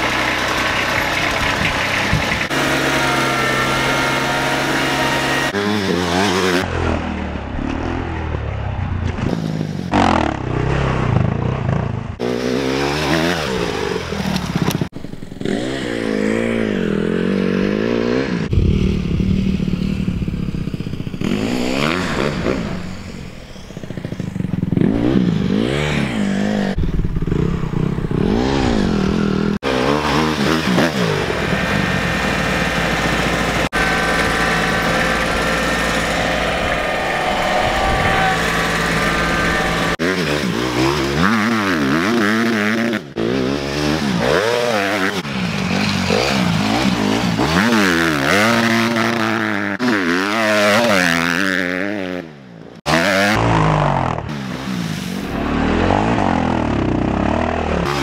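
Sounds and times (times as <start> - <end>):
tractor engine running steadily: 0.0 - 5.6, 31.1 - 37.1
dirt bike engine revving: 0.0 - 58.0.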